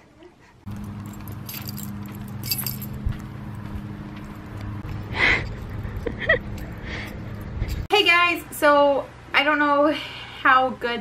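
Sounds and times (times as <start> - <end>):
low mechanical hum: 0.0 - 11.0
metallic jingling: 0.7 - 3.7.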